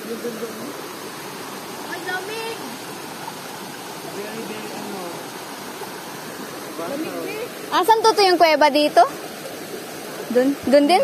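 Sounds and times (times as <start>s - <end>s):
water rushing over rocks: 0.0s - 11.0s.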